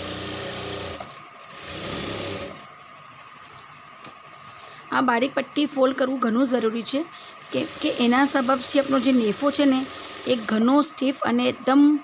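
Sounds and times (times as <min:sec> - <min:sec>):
sewing machine stitching: 0:00.0 - 0:02.7, 0:07.4 - 0:10.8.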